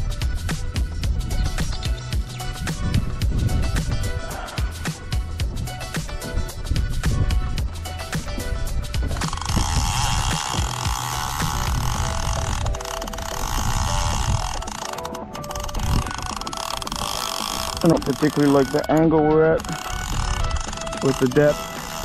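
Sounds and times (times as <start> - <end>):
background music: 0.0 - 22.0
fishing reel whirring: 0.0 - 22.0.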